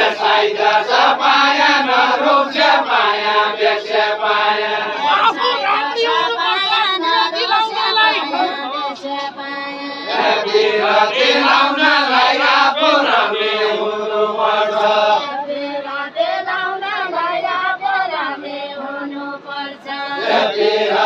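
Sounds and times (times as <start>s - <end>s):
group singing in chant: 0.0s - 21.0s.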